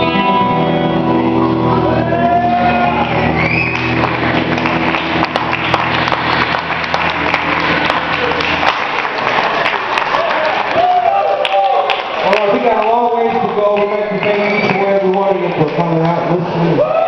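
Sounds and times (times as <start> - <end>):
electric guitar and bass chord: 0.0 - 9.8
audience applause and cheering: 1.5 - 17.0.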